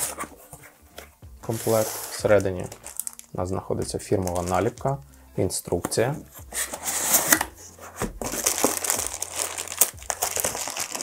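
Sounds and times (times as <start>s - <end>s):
plastic bag crinkling: 1.7s - 3.3s, 4.2s - 4.8s, 8.3s - 11.0s.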